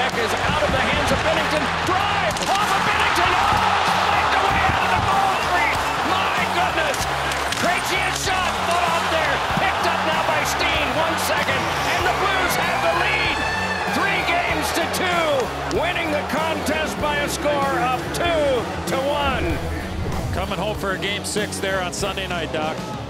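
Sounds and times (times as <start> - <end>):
sticks and puck clacking on boards: 0.0 - 3.6
crowd shouting and whistling: 1.6 - 20.0.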